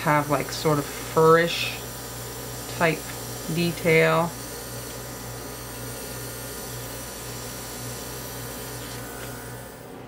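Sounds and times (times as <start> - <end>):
compressor hum: 0.0 - 10.0
airbrush spraying hiss: 2.4 - 9.8.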